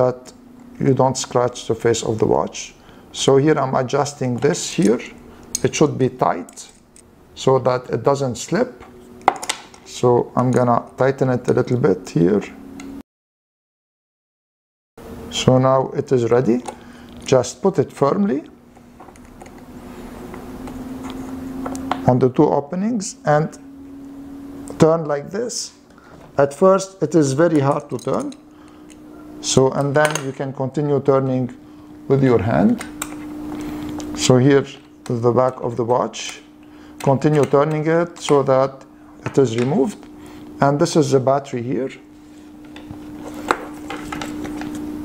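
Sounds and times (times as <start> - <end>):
steady low hum: 0.0 - 13.0, 15.0 - 45.0.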